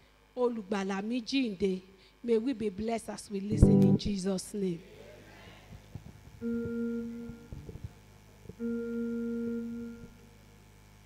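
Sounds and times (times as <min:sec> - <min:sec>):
steady held musical note: 0:03.5 - 0:04.1.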